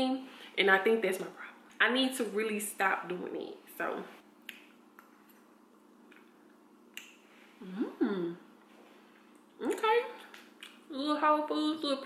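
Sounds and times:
person humming mm: 7.6 - 8.5.

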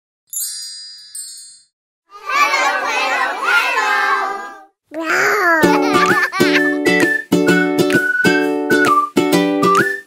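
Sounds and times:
children calling out together: 2.1 - 5.8.

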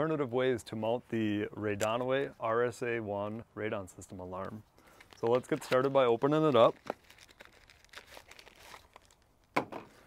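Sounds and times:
person speaking: 0.0 - 6.9
paper box rustling and crinkling: 5.0 - 9.2.

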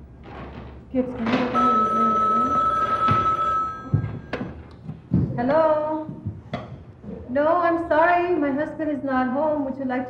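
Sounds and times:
desk telephone ringing: 1.3 - 4.5.

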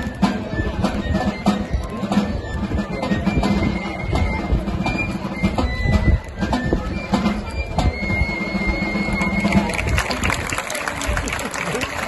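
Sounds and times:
crowd noise: 0.0 - 12.0
drum beats: 0.0 - 12.0.

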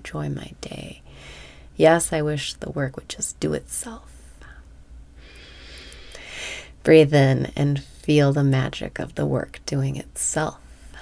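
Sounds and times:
faint low hum: 0.0 - 11.0
woman breathing in: 1.1 - 1.7, 5.2 - 6.8.

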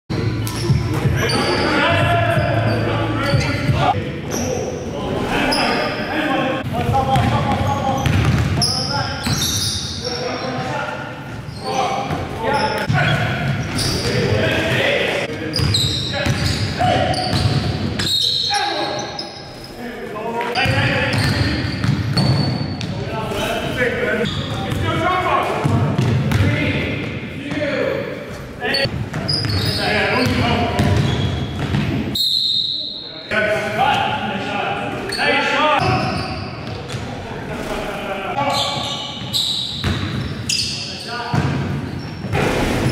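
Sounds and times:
basketball bouncing on gym floor: 6.8 - 8.6, 25.6 - 26.5, 28.9 - 32.1.

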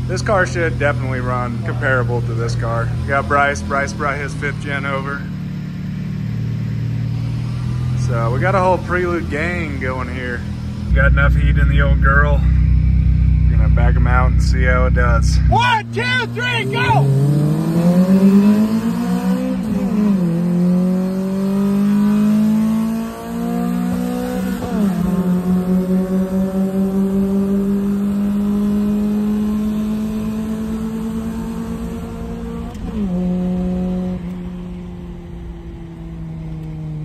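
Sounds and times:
car engine accelerating: 0.0 - 37.0.

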